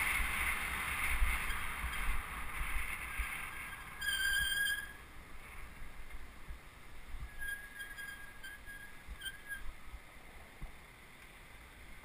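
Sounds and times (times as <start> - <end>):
bicycle brakes squealing: 1.4 - 2.2, 3.0 - 5.0, 7.2 - 9.8.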